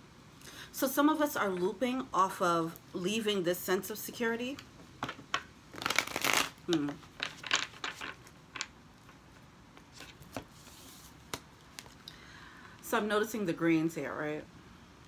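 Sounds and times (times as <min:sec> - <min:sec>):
cards being shuffled: 0:05.0 - 0:12.0.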